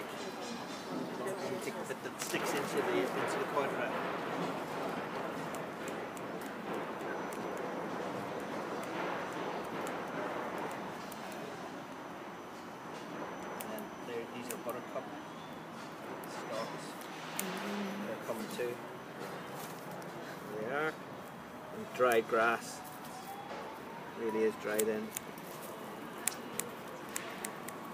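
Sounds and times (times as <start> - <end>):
faint voices: 0.0 - 27.9
scissors snipping grass: 24.6 - 27.9.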